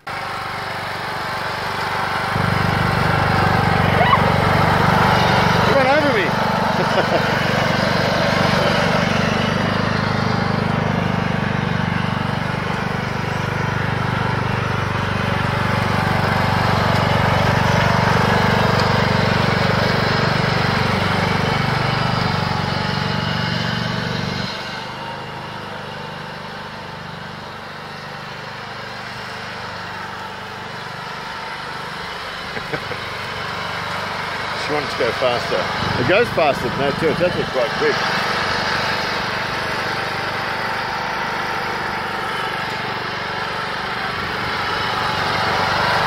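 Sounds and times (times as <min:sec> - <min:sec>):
ride-on lawn mower engine running: 0:00.0 - 0:46.0.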